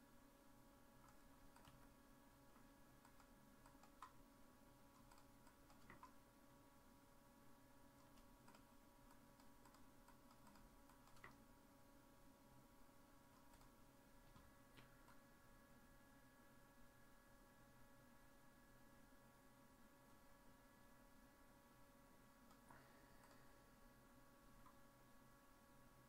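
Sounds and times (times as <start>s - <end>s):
faint electrical hum: 0.0s - 26.0s
keyboard and mouse clicks: 1.0s - 2.0s, 2.6s - 4.2s, 4.9s - 6.2s, 8.0s - 11.5s, 13.3s - 15.2s, 22.4s - 23.5s.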